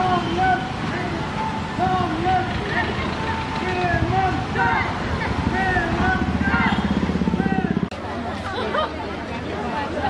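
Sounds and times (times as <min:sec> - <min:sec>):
voices: 0:00.0 - 0:10.0
motorcycle engine running: 0:02.1 - 0:07.9.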